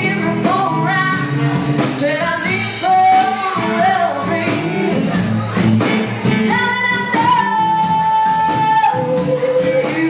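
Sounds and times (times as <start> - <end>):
blues band playing: 0.0 - 10.0.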